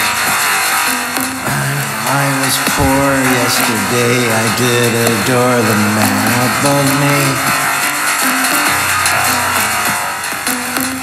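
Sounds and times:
synthpop track: 0:00.0 - 0:11.0.

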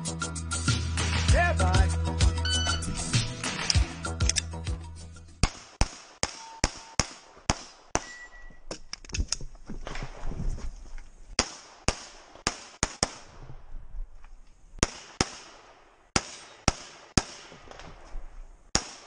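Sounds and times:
pistol shots in quick pairs: 0:05.4 - 0:08.3, 0:11.4 - 0:13.4, 0:14.8 - 0:18.0, 0:18.7 - 0:19.0.

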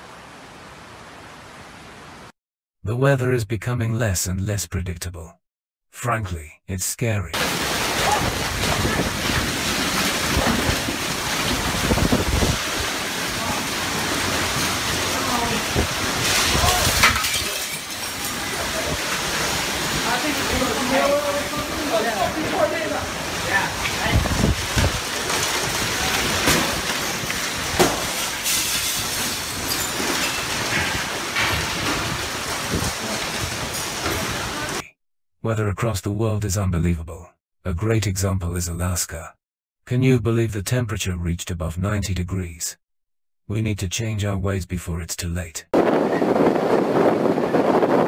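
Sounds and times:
strong storm wind: 0:07.4 - 0:17.3, 0:18.2 - 0:28.2, 0:30.4 - 0:34.8, 0:45.8 - 0:48.0
debris banging and clattering: 0:07.4 - 0:20.6, 0:25.0 - 0:34.7.

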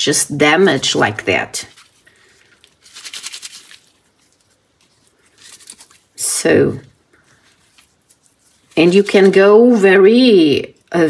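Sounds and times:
wet paper crackling and tearing: 0:01.7 - 0:06.3, 0:07.0 - 0:10.0.

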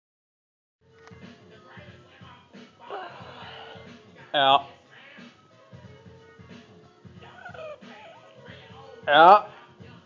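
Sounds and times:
faint music with low beat: 0:00.8 - 0:10.0.

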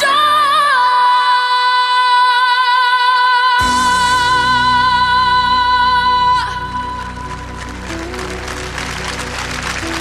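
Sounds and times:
instrumental ballad music: 0:03.1 - 0:10.0
audience applause: 0:07.0 - 0:10.0.

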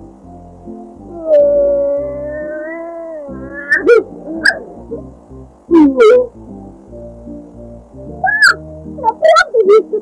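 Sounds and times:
background music: 0:00.0 - 0:10.0
cartoon dog whining: 0:01.1 - 0:05.0, 0:08.3 - 0:08.6.

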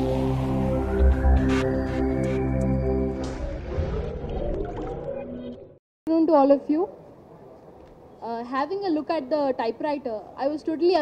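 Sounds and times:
electronic intro jingle: 0:00.0 - 0:05.8.

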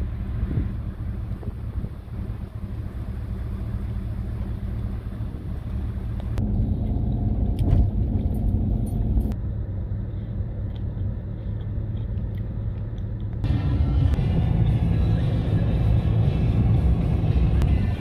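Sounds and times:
car road rumble inside cabin: 0:00.0 - 0:18.0.

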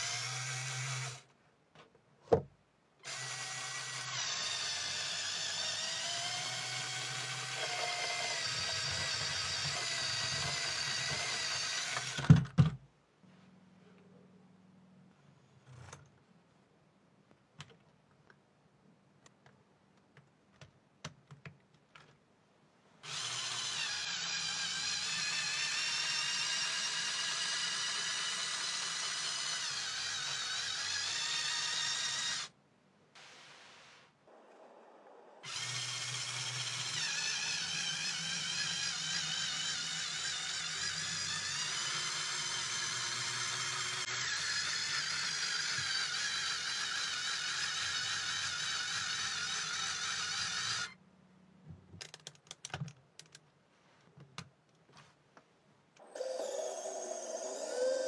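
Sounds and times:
toy motors and gears whining: 0:00.0 - 0:01.2, 0:03.0 - 0:12.3, 0:23.0 - 0:32.5, 0:34.6 - 0:51.0, 0:56.0 - 0:58.0
plastic parts clicking: 0:51.9 - 0:53.5.

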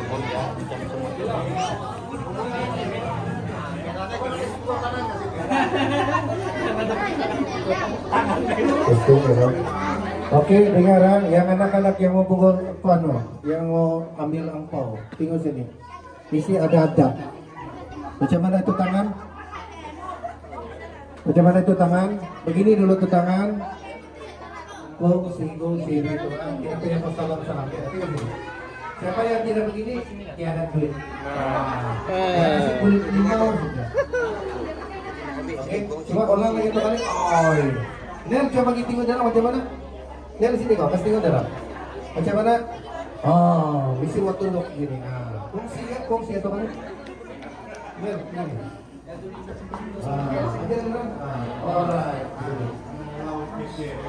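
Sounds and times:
background chatter: 0:00.0 - 0:54.0.

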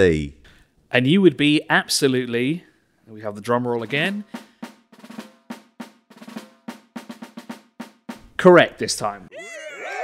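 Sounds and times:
drum roll: 0:03.8 - 0:08.6.

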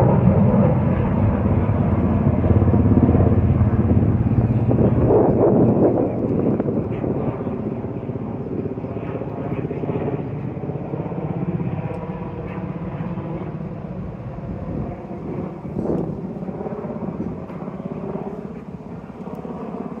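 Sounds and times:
aircraft engine rumble passing over: 0:00.0 - 0:20.0.

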